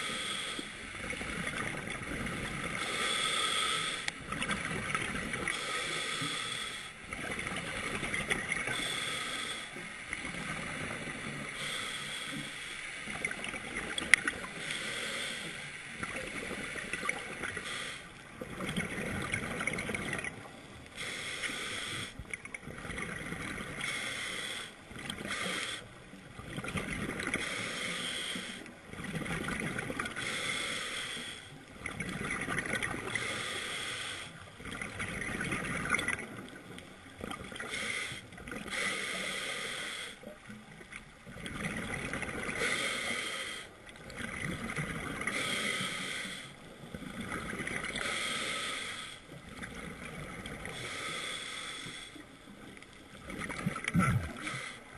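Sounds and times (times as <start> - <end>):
regulator inhalation hiss: 0.0 - 0.8, 2.8 - 4.1, 5.5 - 7.0, 8.7 - 9.9, 11.4 - 13.1, 14.6 - 16.0, 17.6 - 18.1, 21.0 - 22.2, 23.8 - 25.9, 27.4 - 28.7, 30.2 - 31.5, 33.1 - 34.4, 37.6 - 40.2, 42.6 - 43.8, 45.3 - 46.6, 47.9 - 49.3, 50.8 - 52.2
exhalation bubbles: 53.3 - 54.6.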